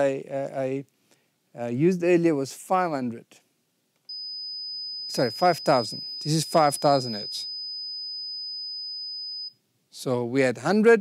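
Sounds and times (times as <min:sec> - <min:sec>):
high sine-wave test tone: 0:04.0 - 0:09.6.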